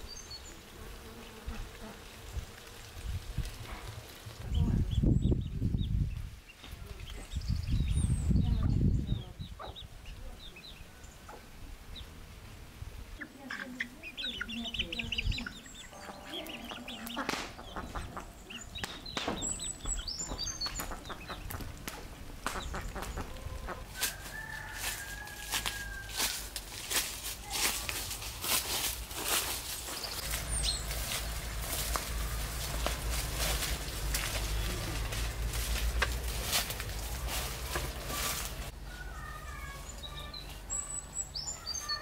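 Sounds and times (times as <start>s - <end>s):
hens and chicks clucking: 8.2s - 12.2s, 13.1s - 26.6s.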